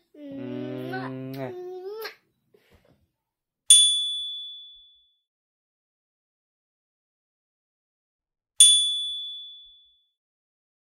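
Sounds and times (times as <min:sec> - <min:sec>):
bright bell-like ding: 0:03.7 - 0:05.0, 0:08.6 - 0:09.9.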